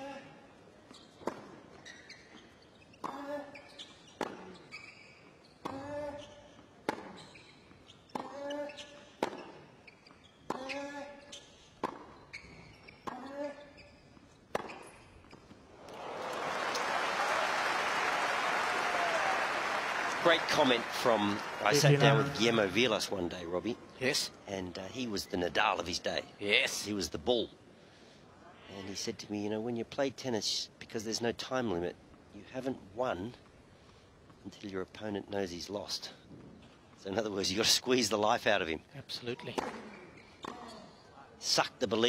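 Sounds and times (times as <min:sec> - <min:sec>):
crowd applause: 0:15.8 - 0:22.8.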